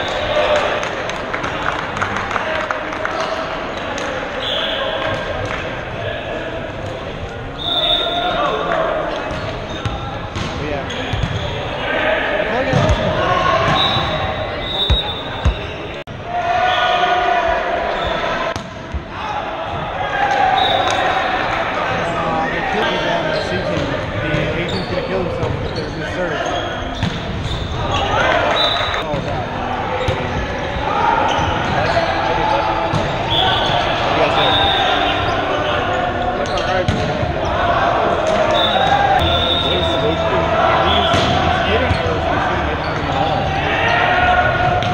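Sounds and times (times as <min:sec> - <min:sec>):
players shouting: 0:00.0 - 0:44.9
sneakers squeaking on wood floor: 0:09.2 - 0:11.8, 0:12.7 - 0:16.0, 0:23.4 - 0:29.2, 0:31.2 - 0:35.6, 0:40.8 - 0:43.5
volleyball being hit: 0:12.7 - 0:13.9.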